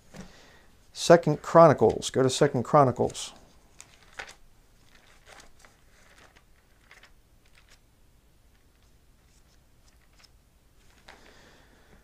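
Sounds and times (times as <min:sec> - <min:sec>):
thin pages being turned: 0:03.0 - 0:07.8, 0:08.5 - 0:11.2.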